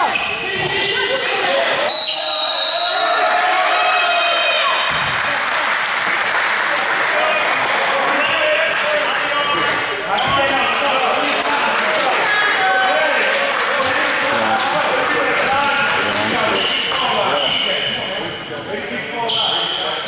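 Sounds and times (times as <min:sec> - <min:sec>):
referee's whistle: 0:01.8 - 0:03.0
people calling out: 0:14.2 - 0:17.4.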